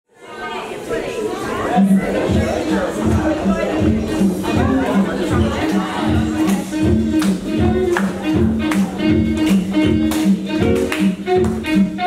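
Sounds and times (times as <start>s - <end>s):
people chattering in echoing hall: 0.1s - 12.0s.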